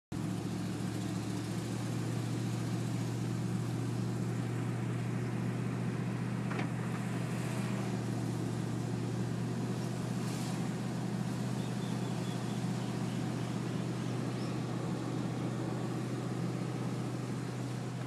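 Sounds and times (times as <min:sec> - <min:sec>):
road noise: 0:00.1 - 0:18.0
car engine hum: 0:00.2 - 0:18.0.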